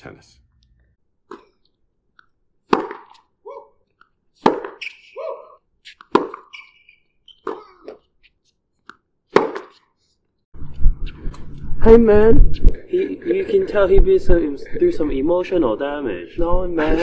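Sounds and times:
rubber soles squeaking: 1.3 - 11.6
tennis ball struck by racket: 2.6 - 3.3, 4.4 - 5.0, 5.9 - 8.0, 8.8 - 9.9.

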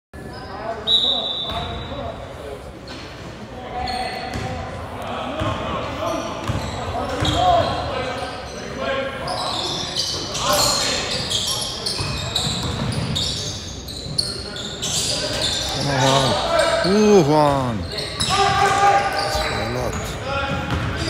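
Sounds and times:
voices echoing in hall: 0.2 - 21.0.

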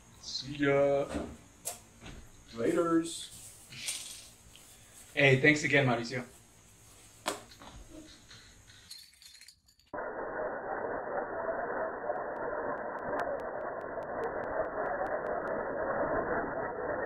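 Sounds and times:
sharp metal clinks: 8.1 - 10.0
bottle caps clattering on glass: 8.6 - 9.9.

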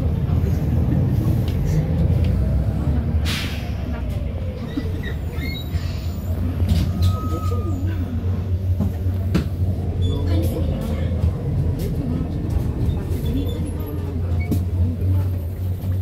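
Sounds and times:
bus engine drone: 0.0 - 16.0.

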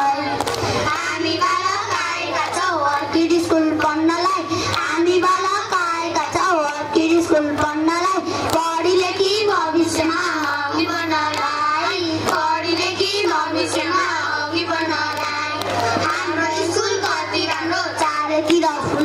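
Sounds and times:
children singing over a pa: 0.0 - 19.0.

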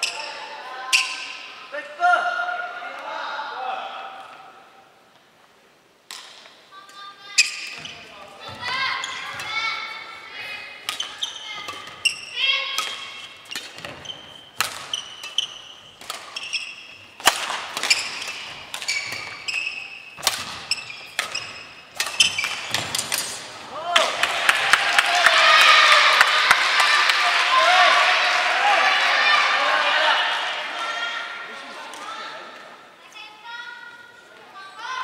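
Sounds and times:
shoes squeaking on wooden floor: 7.3 - 9.9, 10.5 - 12.5, 13.2 - 17.2, 17.8 - 23.6
racket striking shuttlecock: 10.8 - 24.1.

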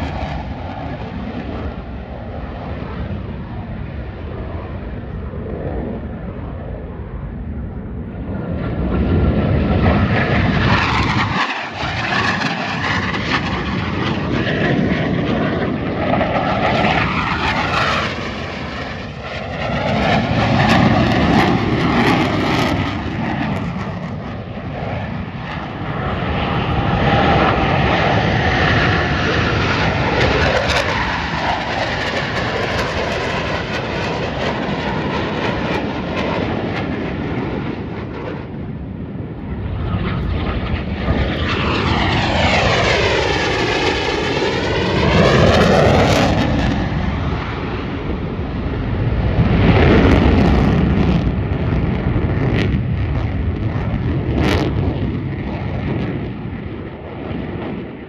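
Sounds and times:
jets flying overhead: 0.0 - 58.0.

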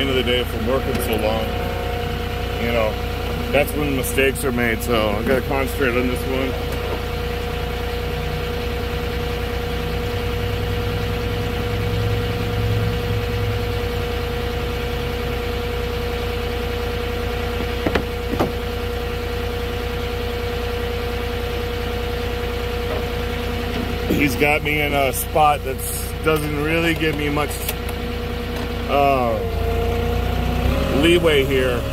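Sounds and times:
diesel engine idling: 0.0 - 31.9.

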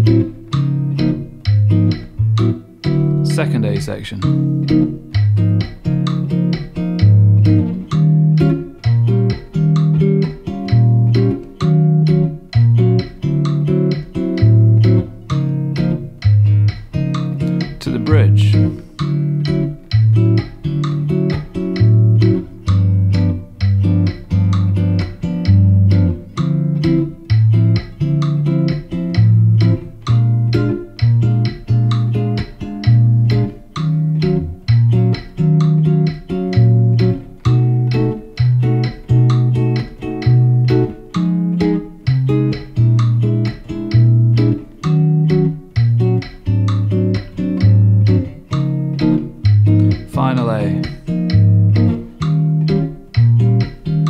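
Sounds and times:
fingerstyle guitar bossa nova: 0.0 - 54.0
metronome ticking: 0.0 - 54.0.

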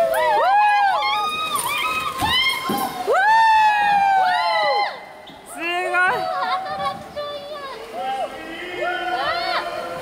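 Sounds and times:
people whooping and calling out: 0.0 - 5.2.

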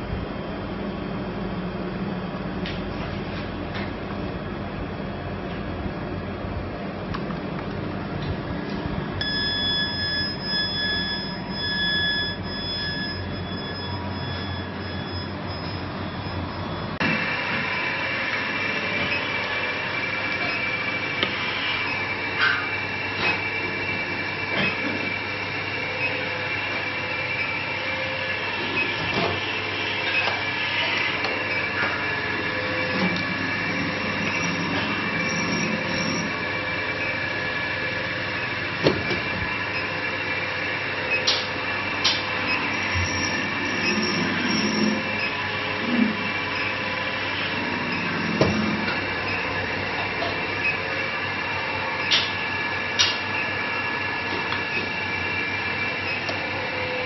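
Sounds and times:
machinery drone: 0.0 - 57.0
high whining tones: 9.2 - 41.4.

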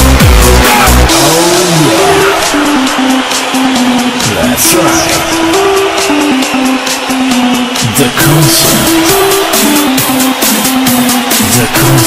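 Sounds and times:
kick drum and bass beat: 0.0 - 12.0.

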